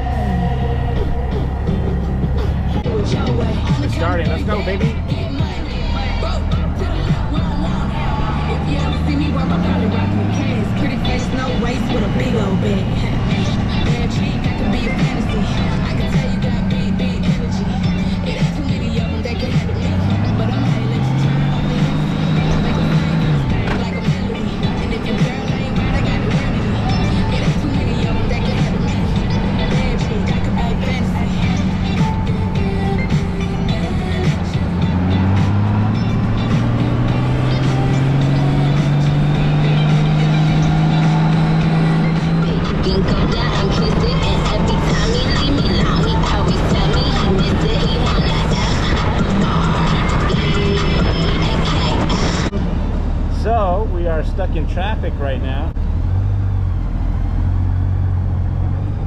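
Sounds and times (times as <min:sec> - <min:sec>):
music playing: 0:00.0 - 0:56.2
motorcycle engine accelerating: 0:00.0 - 0:59.0.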